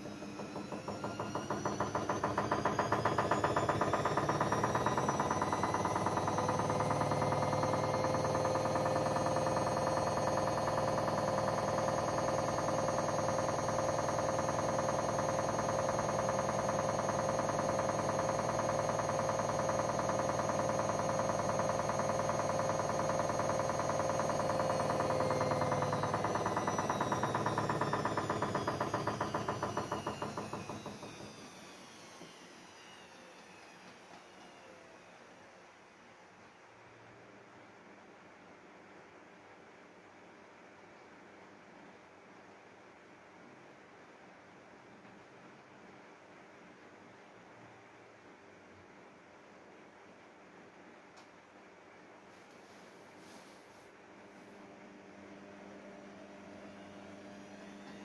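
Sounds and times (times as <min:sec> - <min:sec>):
washing machine spinning: 0:00.0 - 0:35.8, 0:54.2 - 0:58.0.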